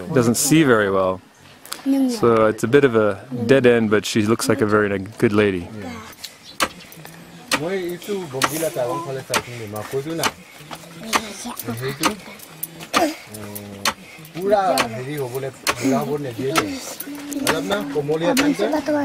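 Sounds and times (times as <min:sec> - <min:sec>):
people talking: 0:06.9 - 0:19.0.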